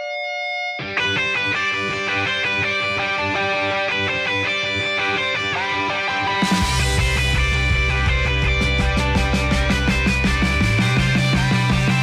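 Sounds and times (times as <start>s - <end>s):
electric guitar: 0.0s - 12.0s
rock backing track: 0.0s - 12.0s
bass guitar: 0.8s - 12.0s
steady drum beat with cymbals: 6.4s - 12.0s.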